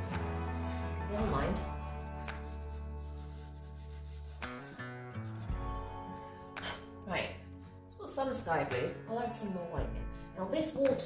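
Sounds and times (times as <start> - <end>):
hand rubbing paper: 0.0 - 5.9
background music of sustained chords: 0.0 - 10.4.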